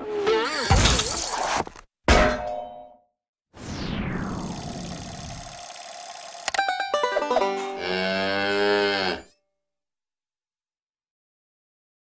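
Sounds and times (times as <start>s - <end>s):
cow mooing: 7.7s - 9.4s.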